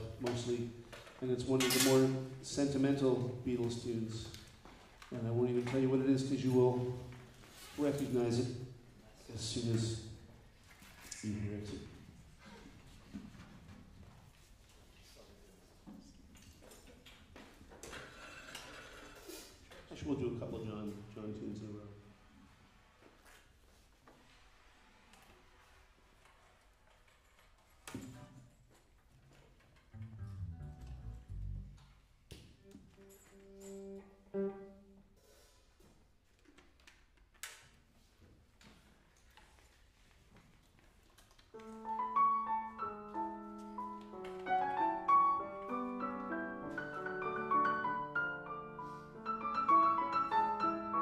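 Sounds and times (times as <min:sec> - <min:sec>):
piano playing chords: 0:30.0 - 0:31.8, 0:33.0 - 0:35.1, 0:41.6 - 0:51.0
soft low notes: 0:30.0 - 0:31.9.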